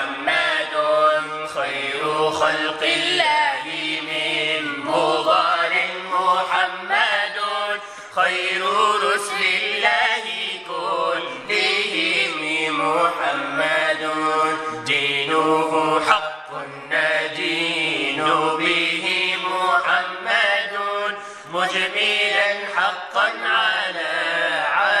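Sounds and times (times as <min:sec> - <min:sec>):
man chanting a devotional song: 0:00.0 - 0:25.0.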